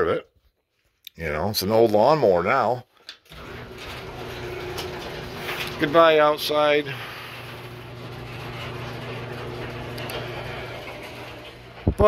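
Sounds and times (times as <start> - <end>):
electric fan humming: 3.3 - 12.0
fan air rushing: 3.3 - 12.0.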